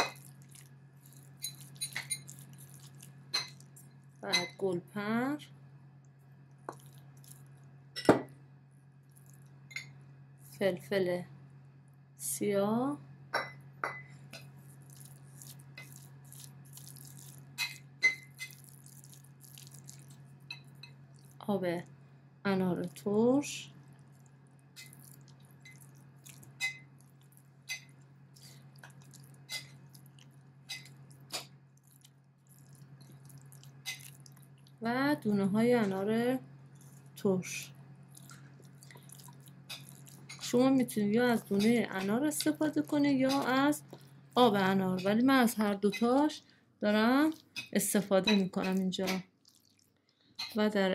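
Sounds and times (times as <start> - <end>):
spoon stirring mash in bowl: 0.0 - 4.5, 14.3 - 21.4, 28.8 - 34.7, 38.1 - 40.6, 41.4 - 44.1.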